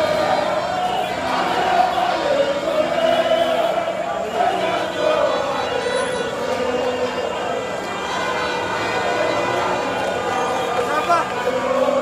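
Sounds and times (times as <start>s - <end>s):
crowd singing and shouting: 0.0s - 12.0s.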